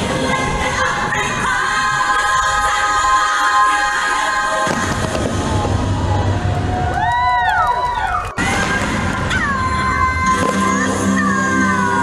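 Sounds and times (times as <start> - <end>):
fireworks rumbling and crackling: 4.5 - 7.2, 8.3 - 10.9.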